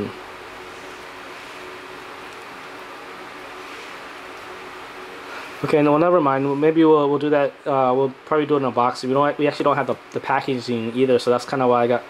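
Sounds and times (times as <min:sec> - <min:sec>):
faint steady hum: 0:00.0 - 0:12.0
steady hiss: 0:00.0 - 0:12.0.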